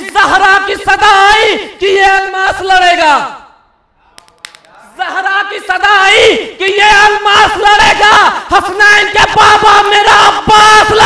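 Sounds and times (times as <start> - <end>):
man reciting poetry: 0.0 - 11.0.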